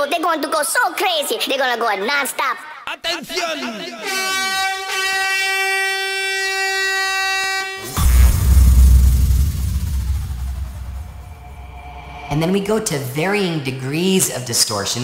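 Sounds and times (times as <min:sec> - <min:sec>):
steady horn tone: 0:04.0 - 0:13.0
deep bass boom: 0:07.8 - 0:13.3
falling sweep: 0:07.8 - 0:13.5.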